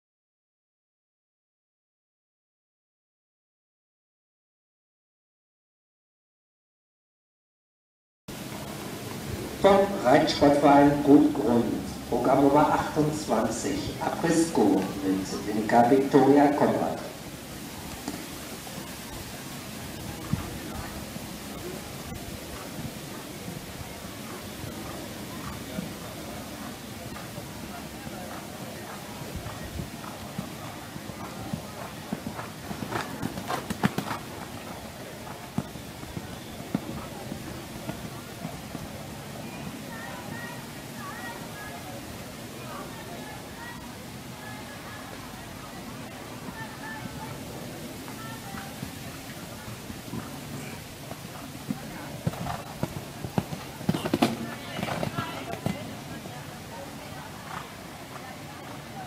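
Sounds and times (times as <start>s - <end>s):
horse hoofbeats on sand: 21.5s - 39.8s, 48.0s - 56.1s.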